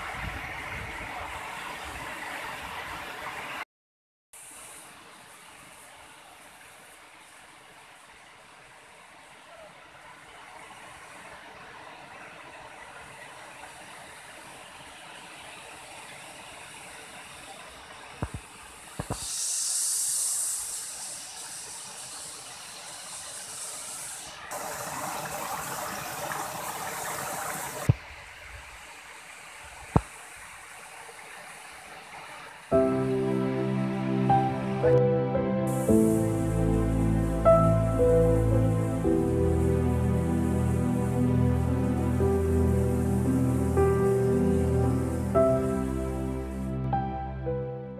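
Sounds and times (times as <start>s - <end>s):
waterfall rushing: 4.4s - 47.8s
bursts of hiss: 16.2s - 33.3s, 35.6s - 46.8s.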